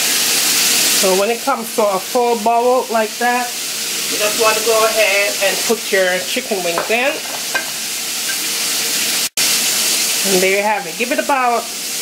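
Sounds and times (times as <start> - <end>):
sauce sizzling in a pan: 0.0 - 12.0.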